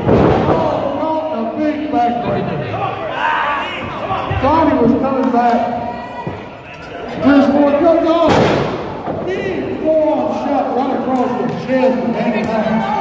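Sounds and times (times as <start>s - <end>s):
spectators shouting: 0.6s - 4.8s.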